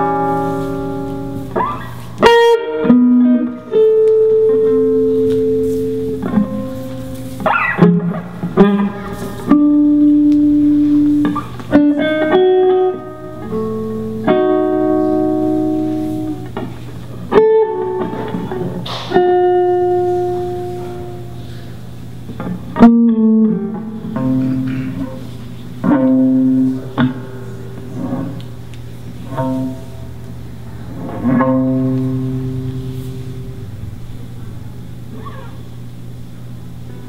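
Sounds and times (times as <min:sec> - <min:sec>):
guitar plucked notes and chords: 0:00.0 - 0:37.0
steady low hum: 0:00.0 - 0:37.0.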